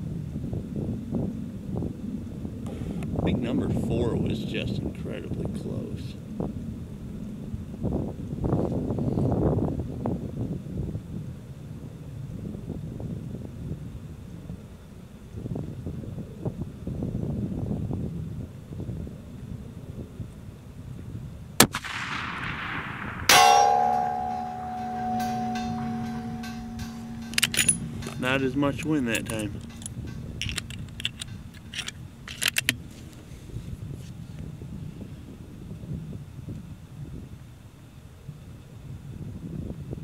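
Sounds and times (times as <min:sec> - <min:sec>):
wind on microphone: 0:00.0 - 0:40.0
rifle shot crack: 0:21.6 - 0:24.3
steel target plate clanging: 0:23.3 - 0:31.9.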